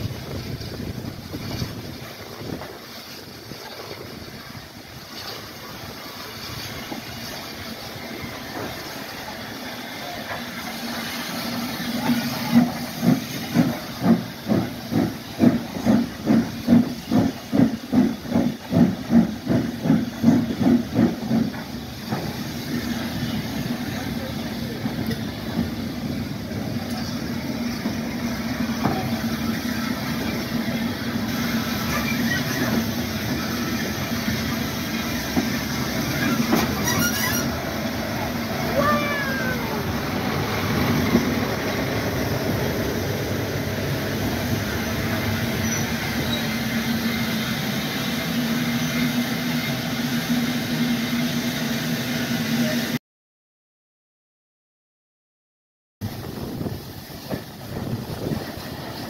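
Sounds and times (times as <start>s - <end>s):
hiss and rumble of moving train: 0.0s - 53.0s, 56.0s - 59.0s
steam locomotive exhaust chuffing: 0.0s - 53.0s.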